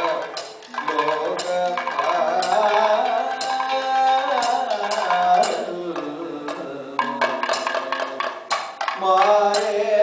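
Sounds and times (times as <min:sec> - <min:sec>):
man singing long notes: 0:00.0 - 0:10.0
small hand cymbals striking: 0:00.0 - 0:10.0.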